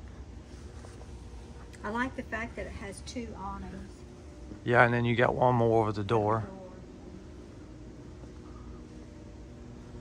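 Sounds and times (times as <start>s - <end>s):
faint background hum: 0.0s - 10.0s.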